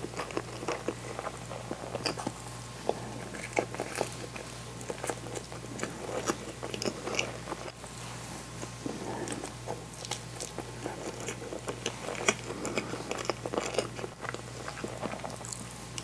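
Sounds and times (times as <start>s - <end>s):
chewing with mouth clicks: 0.0s - 7.8s, 8.6s - 16.0s.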